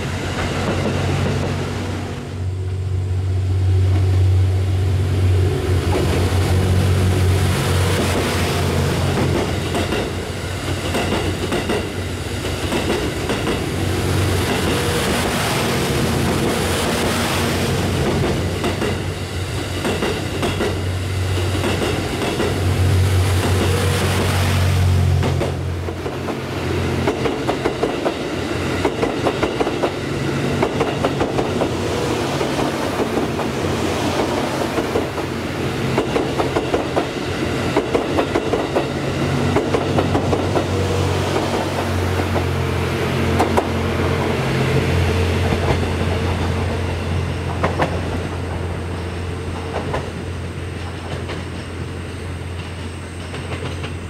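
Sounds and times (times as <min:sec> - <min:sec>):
train engine drone: 0:00.0 - 0:54.0.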